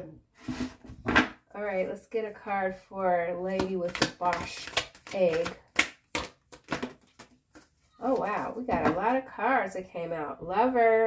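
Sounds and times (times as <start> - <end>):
cards being shuffled: 3.6 - 8.6.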